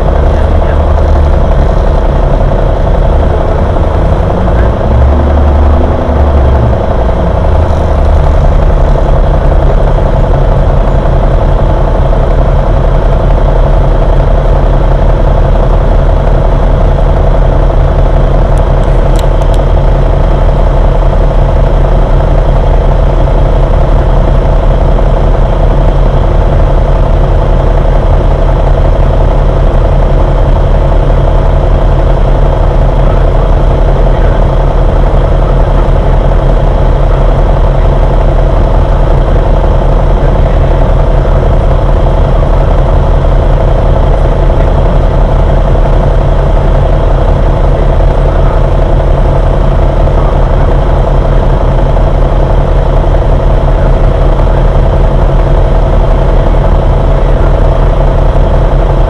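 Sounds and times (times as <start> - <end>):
bus engine droning: 0.0 - 59.0.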